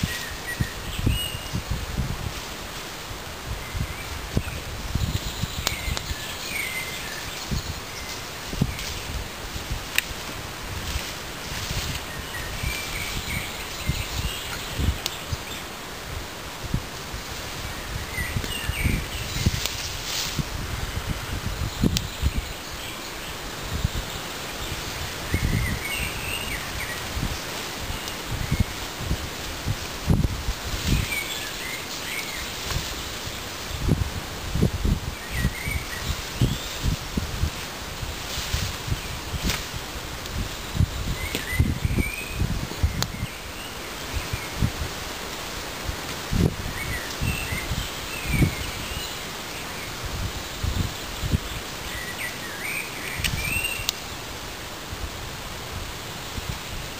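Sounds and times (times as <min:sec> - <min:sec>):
bird chirps: 0:00.0 - 0:01.6, 0:51.9 - 0:54.2
leafy branches rustling: 0:00.0 - 0:56.9.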